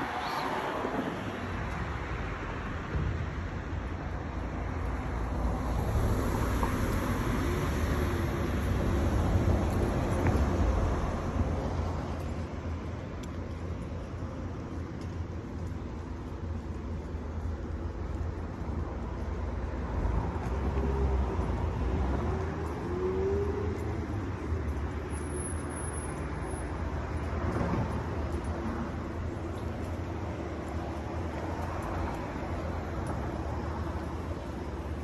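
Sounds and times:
road noise rumble: 0:00.0 - 0:35.0.

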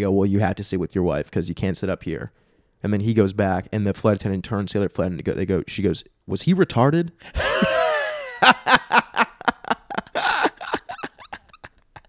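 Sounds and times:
men laughing hard: 0:07.4 - 0:12.0.

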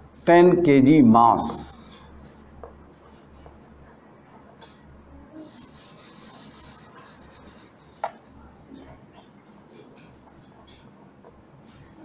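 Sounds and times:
chalk taps: 0:02.6 - 0:04.8, 0:05.4 - 0:08.4, 0:09.2 - 0:11.8
chalk writing on blackboard: 0:02.9 - 0:04.6, 0:05.4 - 0:08.6
hand rubbing chalk off board: 0:05.4 - 0:08.4.

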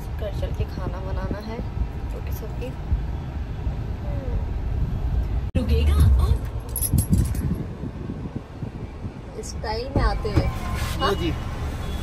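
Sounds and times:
metallic jingling and clinking: 0:06.6 - 0:07.6.

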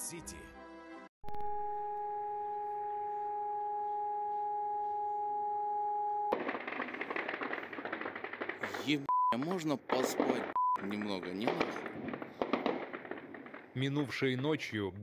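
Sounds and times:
air-raid siren: 0:01.5 - 0:06.4
dense rapid crackling: 0:06.3 - 0:14.8.

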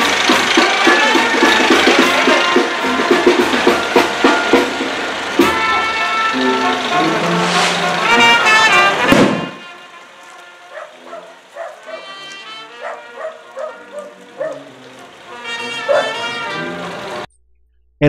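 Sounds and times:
brass band music: 0:00.0 - 0:17.3.

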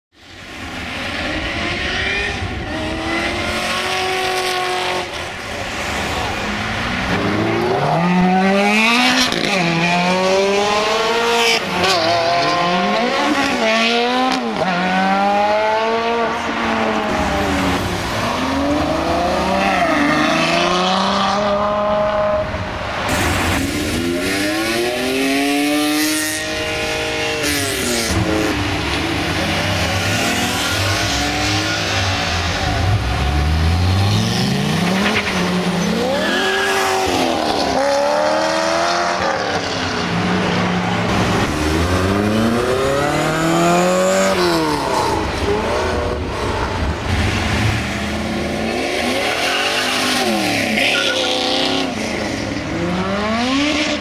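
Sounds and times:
cars accelerating past: 0:00.4 - 0:54.0.

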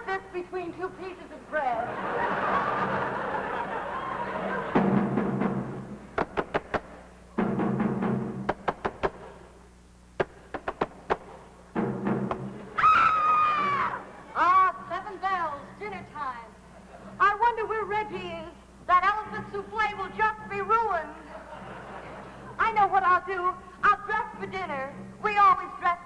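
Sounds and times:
low drum rolls: 0:02.4 - 0:09.4, 0:10.2 - 0:14.1
sharp drum strikes: 0:04.6 - 0:12.8
voice with long gliding cries: 0:12.8 - 0:14.0.

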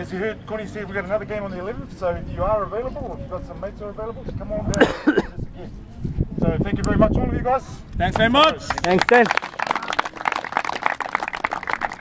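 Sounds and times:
people applauding: 0:08.6 - 0:12.0.

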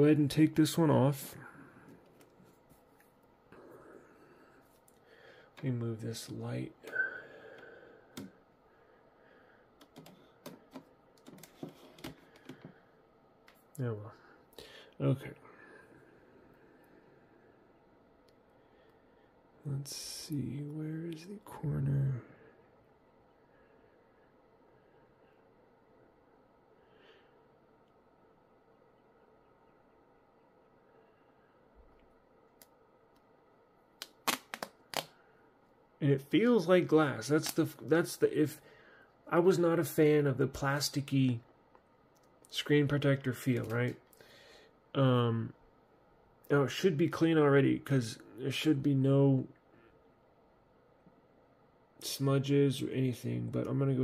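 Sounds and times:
screen protector film peeling: 0:34.0 - 0:35.1.

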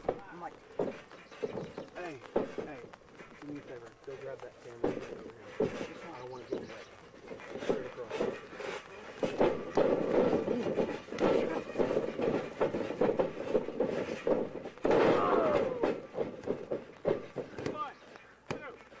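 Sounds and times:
voices talking and calling out: 0:00.0 - 0:13.4, 0:14.3 - 0:19.0
scuffling knocks: 0:00.0 - 0:19.0.

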